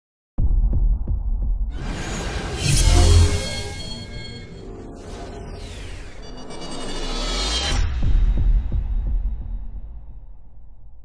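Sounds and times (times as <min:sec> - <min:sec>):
bright rising synth swell: 0:01.8 - 0:07.8.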